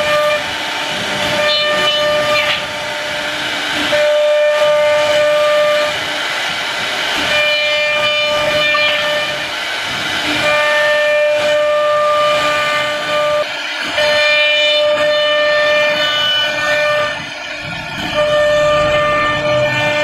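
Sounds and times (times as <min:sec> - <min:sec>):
router spindle whining: 0:00.0 - 0:20.0
rushing hiss of cutting: 0:00.0 - 0:20.0.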